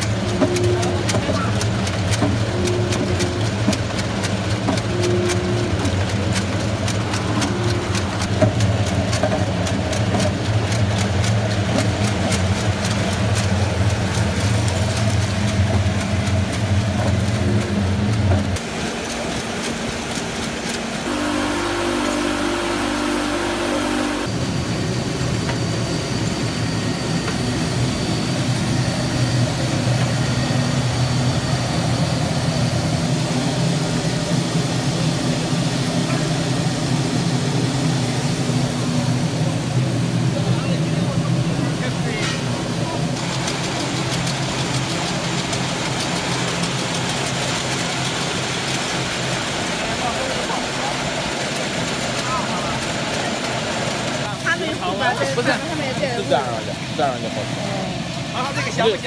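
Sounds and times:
processing machinery motors running: 0.0 - 59.0.

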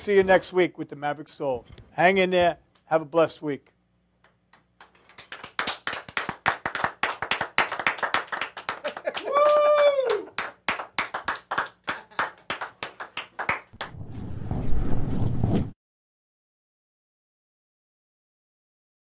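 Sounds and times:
hand clapping: 4.2 - 13.9
person whooping: 8.8 - 10.5.

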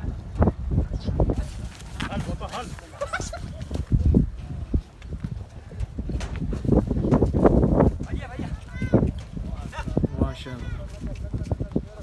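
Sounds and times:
hooves thudding on dirt: 1.3 - 10.0, 10.6 - 12.0.

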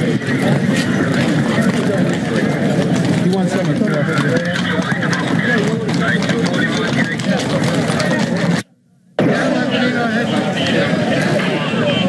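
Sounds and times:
horse hooves clopping on pavement: 0.0 - 8.6
many people's voices: 0.0 - 12.0.

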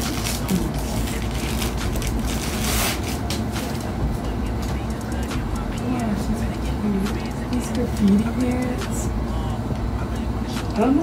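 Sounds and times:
plastic packaging crinkling: 0.0 - 3.9
steady low hum: 0.0 - 11.0.

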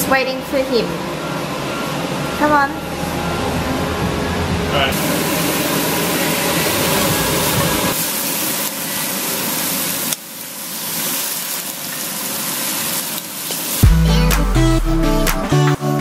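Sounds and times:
chicken sizzling in frying pan: 5.0 - 13.9
music with bass and guitar: 13.8 - 16.0.

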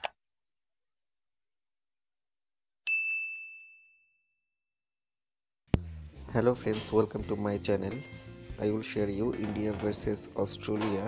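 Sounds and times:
high bright bell ding: 2.9 - 4.4.

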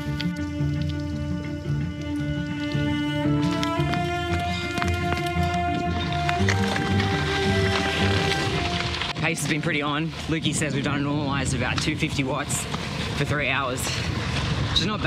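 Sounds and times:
steady low beat: 0.0 - 9.2
sustained chords: 0.0 - 10.3.

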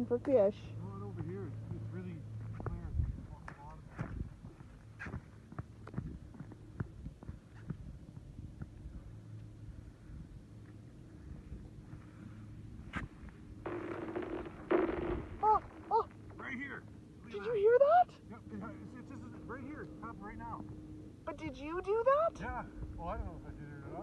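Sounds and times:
lake ice cracking: 13.7 - 16.1.

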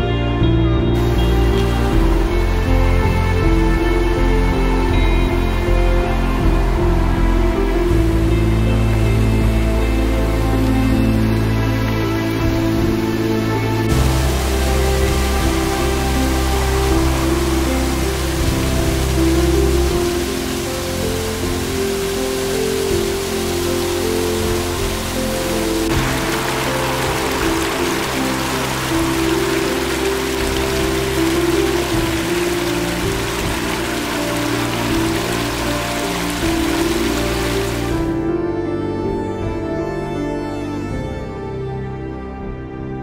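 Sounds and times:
fast stream: 0.0 - 40.4
background music with held notes: 0.0 - 43.0
waterfall rushing: 1.0 - 38.3.

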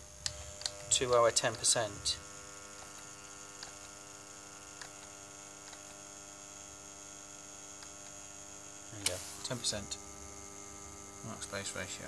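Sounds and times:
electric motor hum: 0.0 - 12.0.

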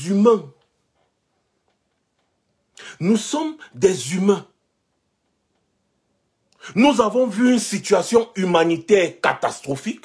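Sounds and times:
man speaking: 0.0 - 0.6, 2.8 - 4.6, 6.6 - 10.0.

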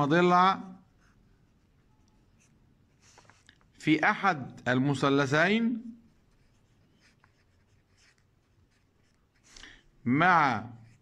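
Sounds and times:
pen scratching on paper: 0.8 - 3.6, 6.0 - 9.6, 10.7 - 11.0.

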